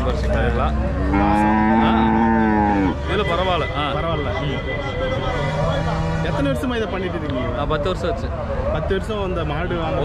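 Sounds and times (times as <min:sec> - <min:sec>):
cow mooing: 0:01.0 - 0:03.0.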